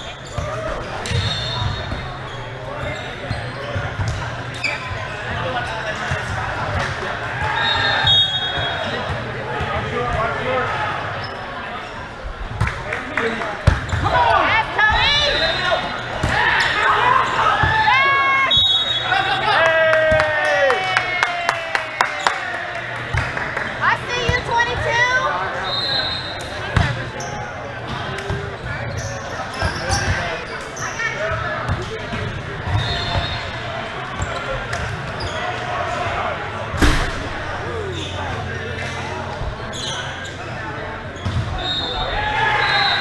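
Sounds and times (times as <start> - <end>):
volleyball struck and bouncing: 36.8 - 37.5.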